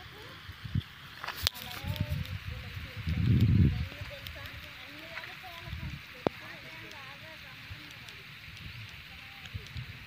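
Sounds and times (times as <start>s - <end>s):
distant voices: 0.0s - 10.0s.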